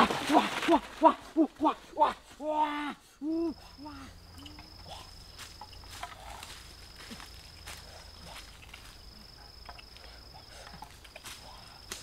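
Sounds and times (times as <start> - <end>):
high-pitched insect call: 3.2 - 12.0.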